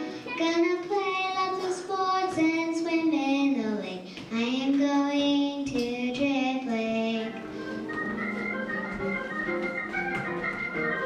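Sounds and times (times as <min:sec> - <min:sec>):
girl singing into a microphone: 0:00.0 - 0:07.6
electronic organ chords: 0:07.4 - 0:11.0.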